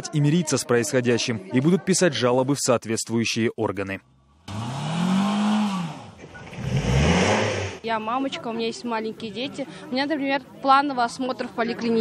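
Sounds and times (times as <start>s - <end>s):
car engine revving hard: 4.4s - 7.8s.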